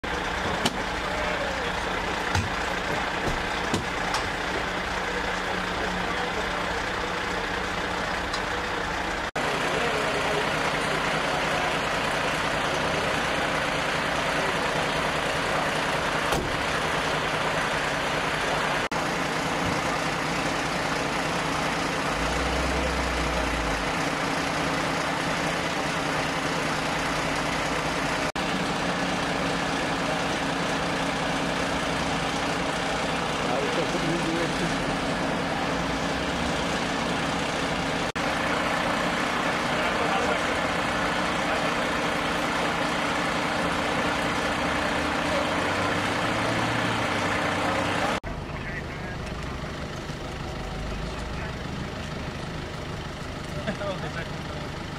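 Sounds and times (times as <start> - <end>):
diesel engine idling: 0.0 - 54.9.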